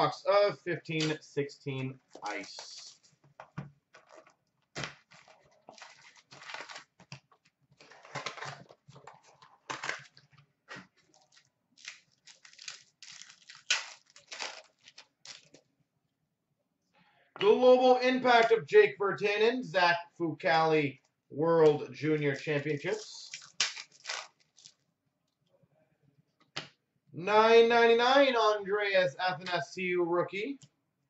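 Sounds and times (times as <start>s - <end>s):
cards rustling: 2.1s - 15.6s, 23.0s - 24.8s
wrappers tearing and crinkling: 4.0s - 7.1s, 11.0s - 15.6s, 23.2s - 24.8s.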